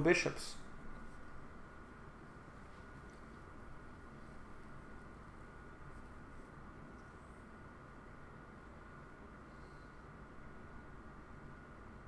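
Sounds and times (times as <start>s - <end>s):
low steady hiss: 0.0s - 12.0s
thin high whine: 0.0s - 12.0s.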